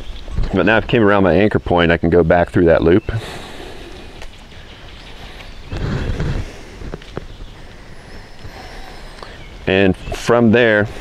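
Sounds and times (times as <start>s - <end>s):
wind on microphone: 3.0s - 10.3s.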